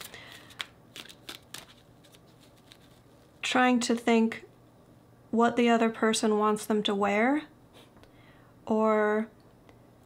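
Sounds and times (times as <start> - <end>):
cards being shuffled: 0.0 - 3.3.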